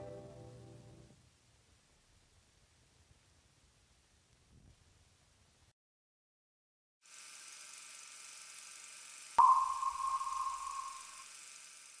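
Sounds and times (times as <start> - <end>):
sonar ping: 9.4 - 11.3.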